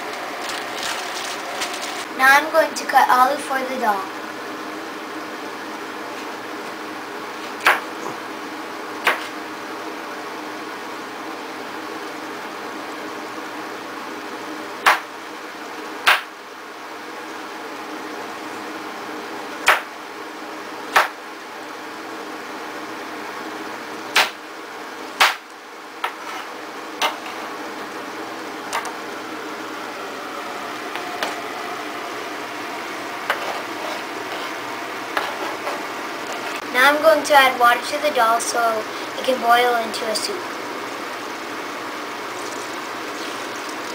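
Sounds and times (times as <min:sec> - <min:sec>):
low room hum: 0:00.0 - 0:43.9.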